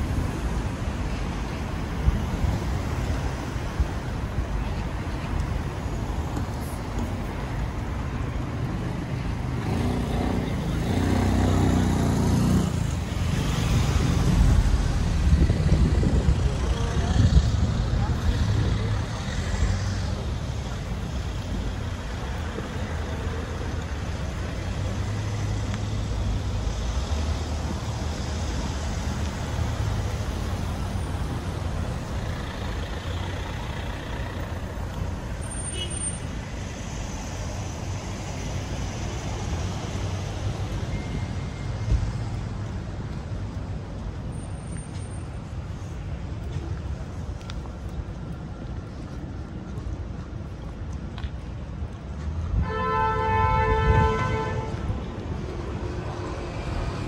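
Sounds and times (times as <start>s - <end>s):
cars passing: 0.0s - 57.0s
low rumble of road noise: 0.0s - 57.0s.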